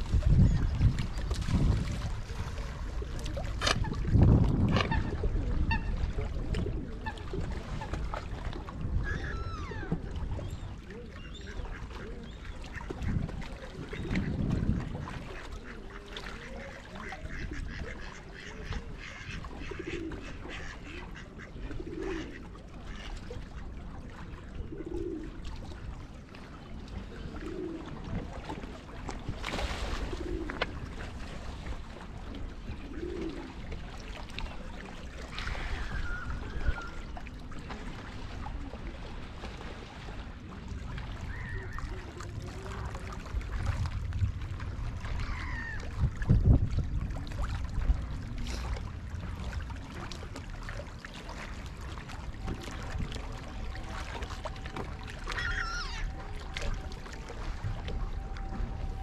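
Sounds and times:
ducks quacking: 0:15.3 - 0:23.7.

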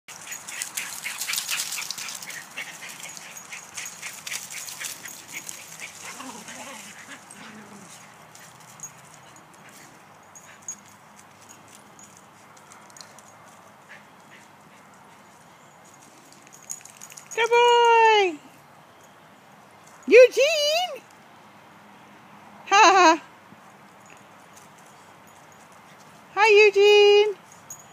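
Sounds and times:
dogs scuffling in dry leaves: 0:00.1 - 0:10.0.

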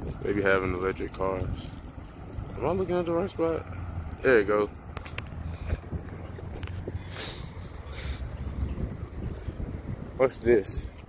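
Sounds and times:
hissing wind gusts: 0:00.0 - 0:11.0
wind on microphone: 0:00.0 - 0:11.0.

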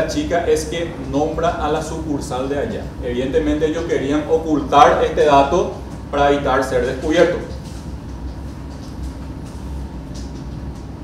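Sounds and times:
sound system hum: 0:00.0 - 0:11.0.

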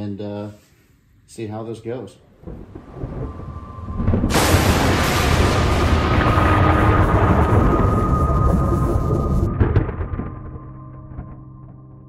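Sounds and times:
crackles: 0:02.2 - 0:12.0
loud thunder-like rumble: 0:02.3 - 0:12.0.

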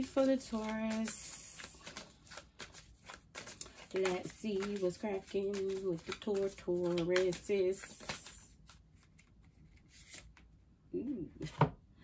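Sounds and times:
cards being shuffled: 0:00.0 - 0:10.5.

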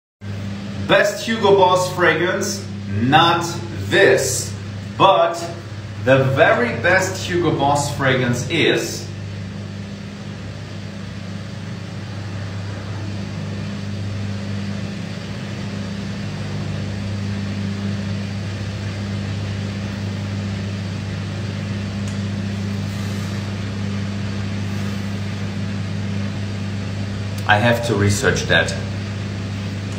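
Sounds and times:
ventilation fan hum and hiss: 0:00.2 - 0:29.9.

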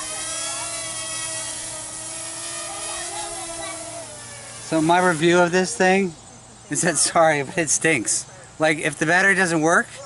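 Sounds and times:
drone propellers whining: 0:00.0 - 0:06.1.

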